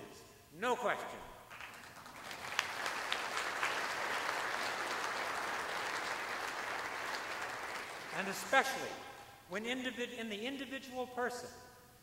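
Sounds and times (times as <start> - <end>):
audience applauding: 1.5 - 8.5.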